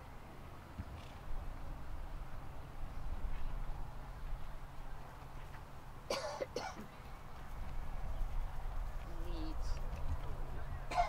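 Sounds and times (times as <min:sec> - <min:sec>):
short coughs: 0:06.1 - 0:06.9
steady low rumble: 0:07.1 - 0:11.0.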